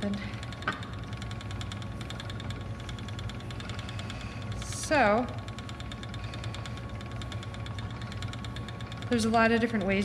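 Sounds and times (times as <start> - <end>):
spinning wheel rumbling and ticking: 0.0 - 10.0.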